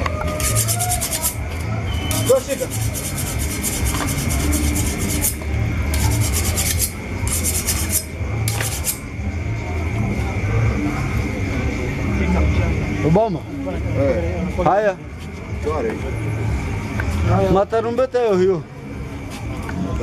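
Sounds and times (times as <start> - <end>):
knife scraping hide: 0.4 - 1.4, 2.1 - 9.0.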